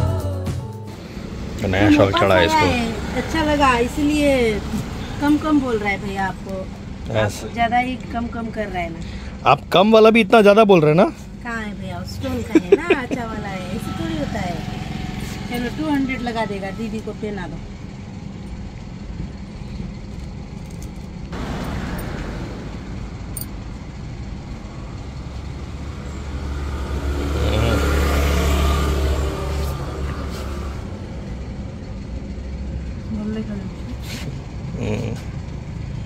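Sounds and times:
low engine rumble: 0.0 - 36.0
vehicle passing: 0.9 - 9.4, 10.4 - 18.4, 21.3 - 36.0
background voices: 27.2 - 28.2.

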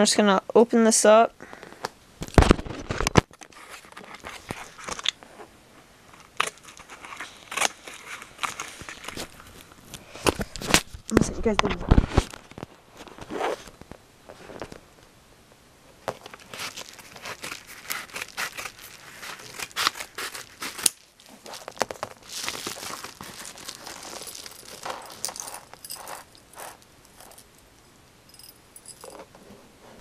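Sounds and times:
paper mailer crinkling: 16.2 - 27.2.

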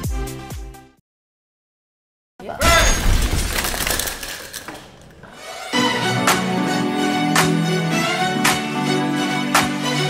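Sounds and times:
loud noisy crash: 2.6 - 5.1.

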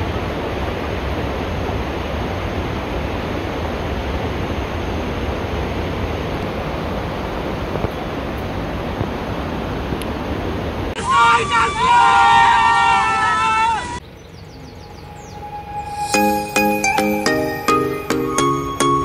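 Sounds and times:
steady rushing noise: 0.0 - 12.3.

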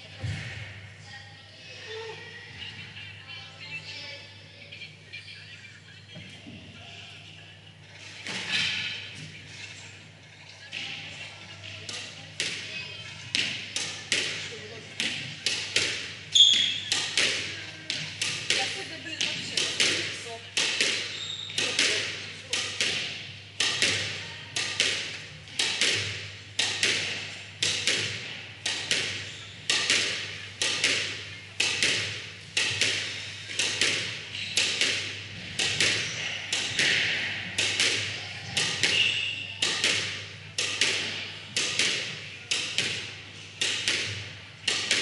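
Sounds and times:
squash ball striking wall: 16.8 - 17.5, 19.3 - 39.0, 39.6 - 45.0.

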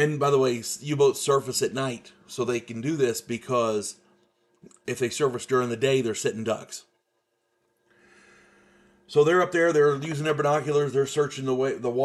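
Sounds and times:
faint breath drawn in: 7.9 - 9.1.

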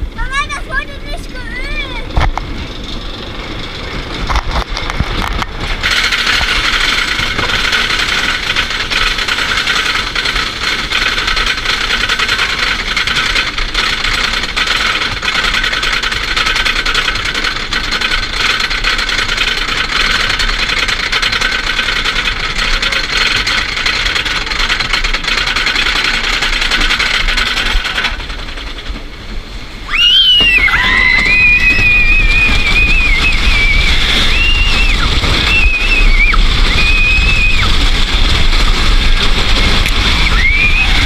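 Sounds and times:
roller coaster chain clattering: 0.0 - 41.0.

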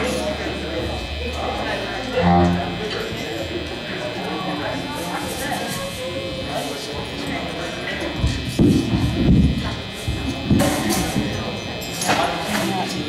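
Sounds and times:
amplifier hum: 0.0 - 5.2
indistinct chatter: 0.0 - 13.0
short low note: 2.1 - 3.0.

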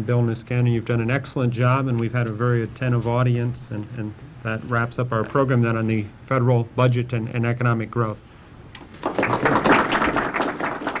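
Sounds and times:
audience applauding: 9.0 - 11.0.

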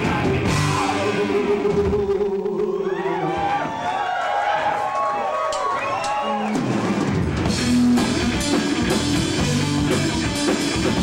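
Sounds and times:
crowd shouting and cheering: 0.0 - 10.6.

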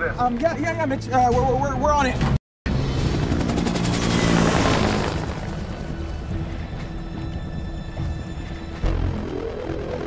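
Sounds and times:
helicopter rotor chop: 2.7 - 6.5
film score sustained notes: 4.4 - 10.0.

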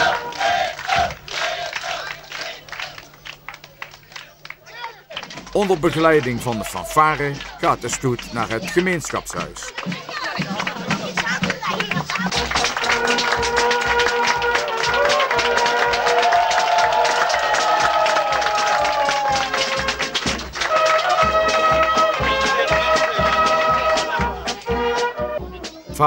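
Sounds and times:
brass band playing a march: 0.0 - 2.0, 11.9 - 26.0
steady drumbeat: 5.3 - 26.0.

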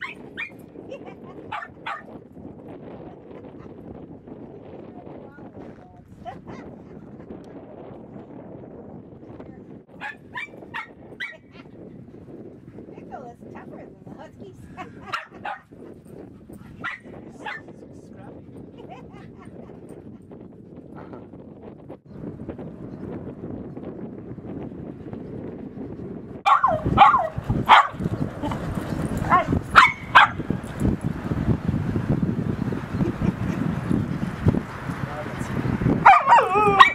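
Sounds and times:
small dog barking: 0.0 - 0.5, 1.4 - 2.1, 10.0 - 11.7, 15.0 - 15.7, 16.8 - 17.7, 26.5 - 28.0, 29.2 - 30.5, 36.0 - 36.9.

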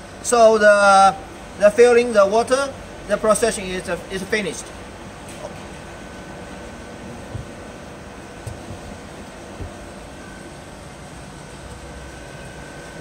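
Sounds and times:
machinery hum: 0.0 - 13.0
faint high whine: 5.4 - 13.0
soft low thumps: 7.0 - 10.3.

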